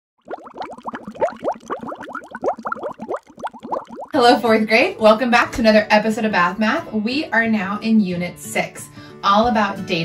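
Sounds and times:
underwater bubbling: 0.2s - 4.2s.

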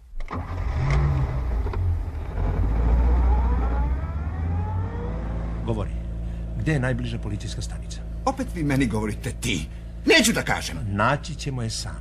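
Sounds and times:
car engine accelerating away: 0.3s - 9.8s.

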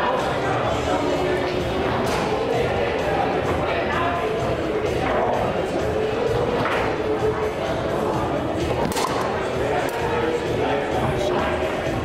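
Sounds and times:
background music: 0.0s - 12.0s
background voices: 0.7s - 12.0s.

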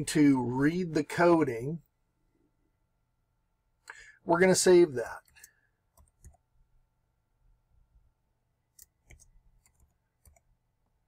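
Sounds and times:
computer keyboard clicks: 5.2s - 6.4s, 8.8s - 10.5s.

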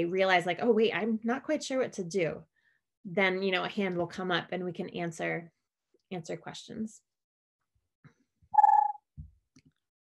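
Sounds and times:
short beep: 8.6s - 9.0s.

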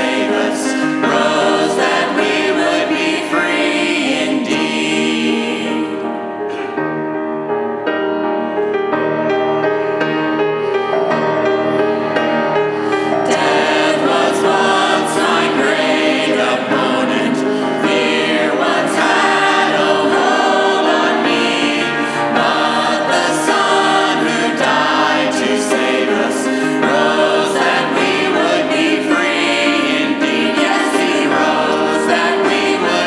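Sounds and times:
group singing a hymn in harmony: 0.0s - 7.1s, 10.7s - 33.0s
grand piano accompaniment: 0.0s - 33.0s.

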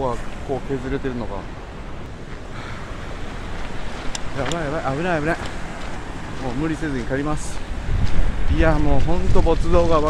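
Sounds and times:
storm surf breaking: 0.0s - 10.0s
wave wash over sand: 0.0s - 10.0s
wind buffeting microphone: 0.0s - 10.0s.

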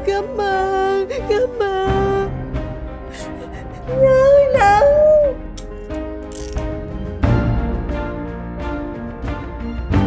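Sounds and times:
woman crying: 0.0s - 2.4s, 3.0s - 5.4s
dramatic music: 0.0s - 10.0s.

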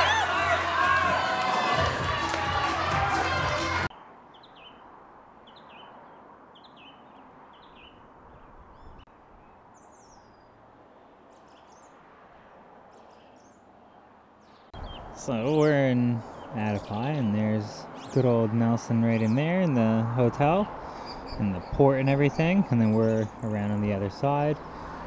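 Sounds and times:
loud voices: 0.0s - 3.9s
music: 0.0s - 3.9s.

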